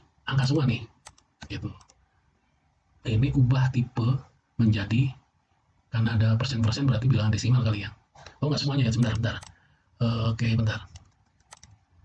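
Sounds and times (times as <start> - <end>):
computer mouse clicks: 1.0 - 2.0, 8.2 - 9.6, 10.8 - 11.9.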